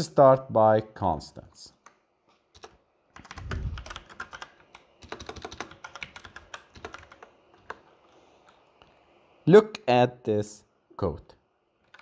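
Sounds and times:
computer keyboard typing: 1.8s - 7.9s.

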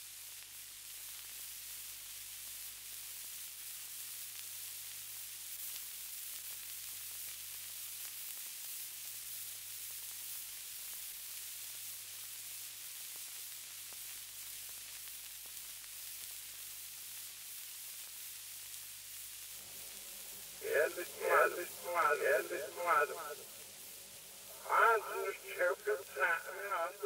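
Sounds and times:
faint recording hiss: 0.0s - 27.0s.

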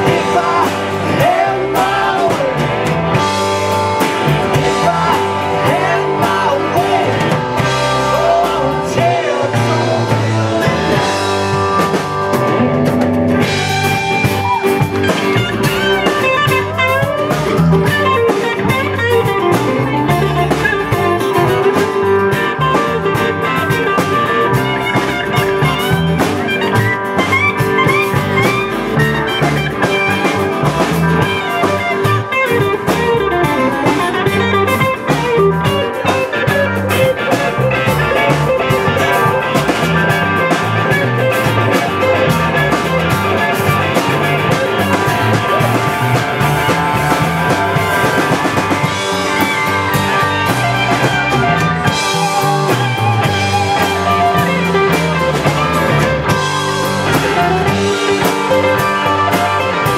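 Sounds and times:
man singing: 0.0s - 2.7s, 4.5s - 11.0s
electric guitar lead lines: 0.0s - 59.9s
live rock band playing: 0.0s - 59.9s.

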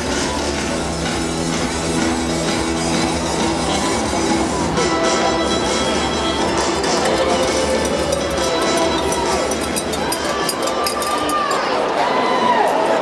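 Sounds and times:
music over pa system: 0.0s - 11.0s
crowd noise: 0.0s - 13.0s.

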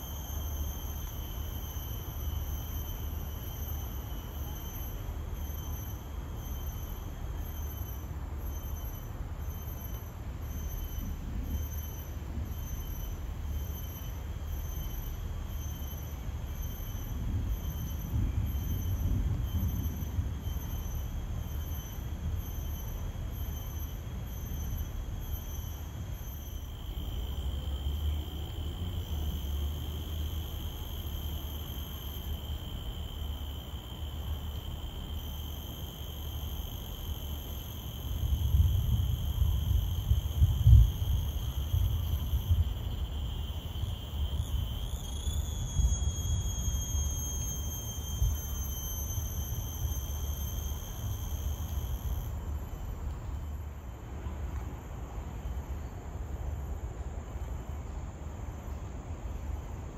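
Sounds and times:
insects droning: 0.0s - 59.9s.

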